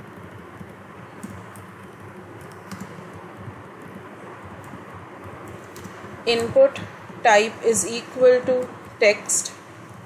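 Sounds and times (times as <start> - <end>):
keyboard keystrokes: 2.4 - 3.1, 4.6 - 6.5.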